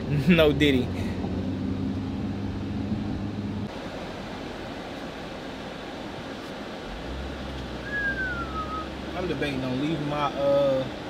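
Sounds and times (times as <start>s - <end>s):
air and road noise: 0.0s - 11.0s
low engine hum: 0.0s - 11.0s.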